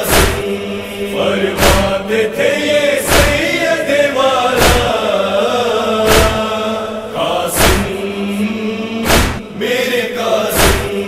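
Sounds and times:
chorus chanting a lament: 0:00.0 - 0:11.0
heavy beat: 0:09.1 - 0:09.4.

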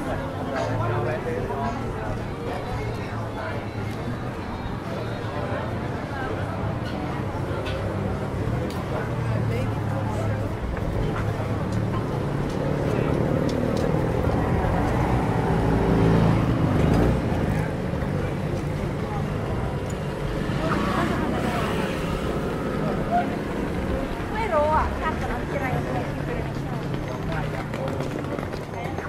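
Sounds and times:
passers-by voices: 0:00.0 - 0:29.0
vehicle engine humming: 0:00.0 - 0:29.0.

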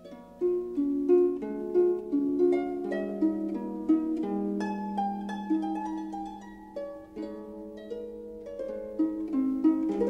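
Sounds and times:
harp plucked notes: 0:00.0 - 0:10.0.

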